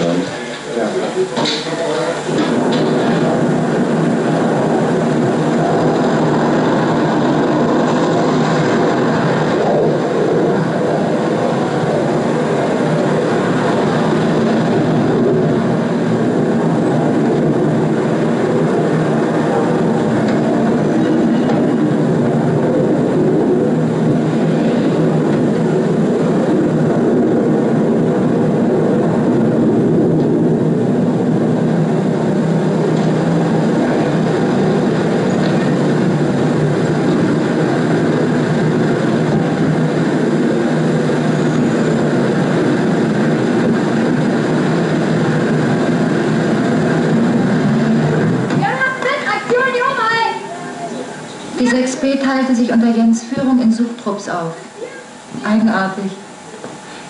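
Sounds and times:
loud engine noise: 0.0 - 57.0
traffic noise: 0.0 - 57.0.

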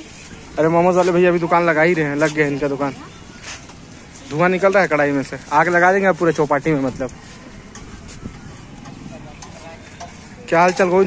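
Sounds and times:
faint voices: 0.0 - 11.0
low background noise: 0.0 - 11.0.

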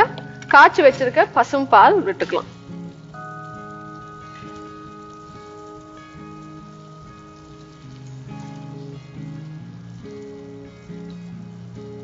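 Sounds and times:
pot simmering and bubbling: 0.0 - 12.0
quiet background music: 0.0 - 12.0.

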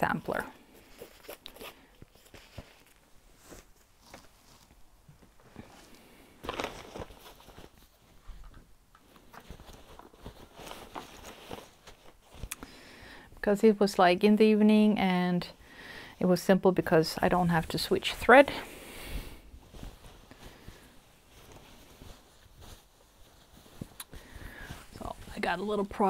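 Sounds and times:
soft rustling: 0.0 - 14.2, 15.4 - 26.0.

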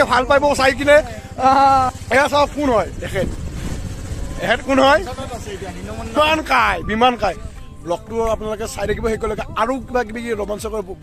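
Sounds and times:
man calling out: 0.0 - 3.3, 4.4 - 10.8
motorcycle engine idling: 0.0 - 11.0.

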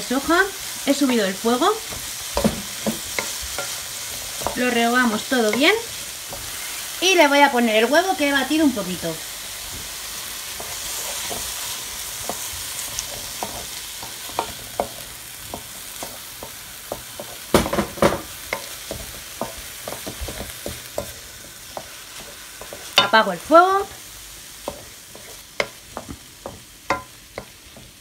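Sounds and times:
food sizzling in a wok: 0.0 - 28.0
wooden spoon scraping and knocking pan: 0.1 - 7.0, 9.6 - 24.0, 24.6 - 28.0.

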